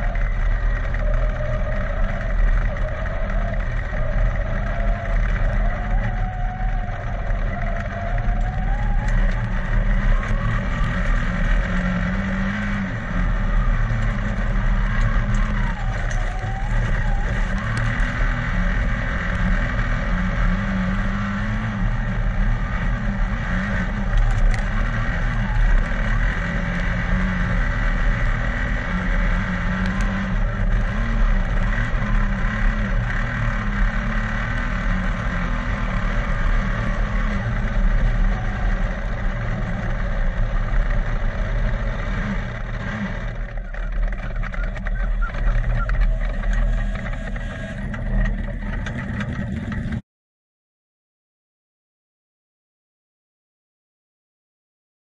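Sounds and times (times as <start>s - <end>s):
racing car engine: 0.0s - 50.0s.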